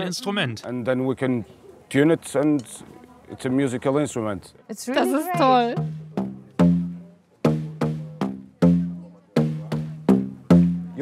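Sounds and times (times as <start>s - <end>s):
struck plastic pipes melody: 5.0s - 11.0s.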